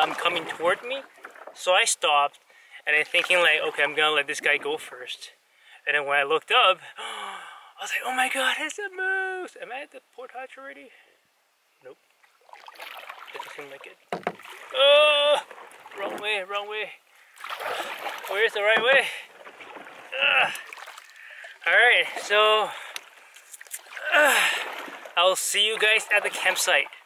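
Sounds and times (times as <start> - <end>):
canoe paddle splashing in water: 0.0 - 1.7, 3.0 - 4.7, 12.2 - 16.5, 17.3 - 27.0
man's breathy grunt: 24.0 - 24.7.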